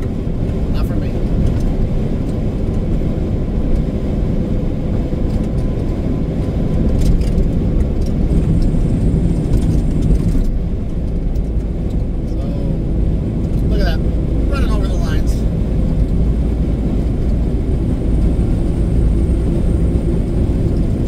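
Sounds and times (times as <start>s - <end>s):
truck engine and tyres droning: 0.0s - 21.0s.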